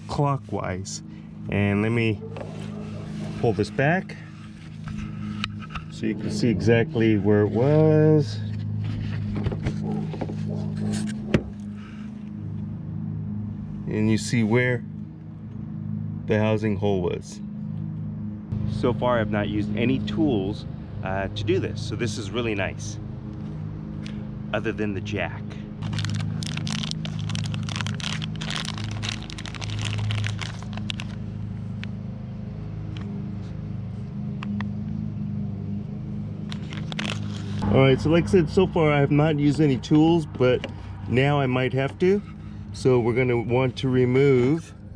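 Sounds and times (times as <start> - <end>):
low hum: 0.0 - 44.9
vehicle engine idling: 0.0 - 44.9
foil bag crinkling: 25.8 - 31.2, 36.5 - 37.6.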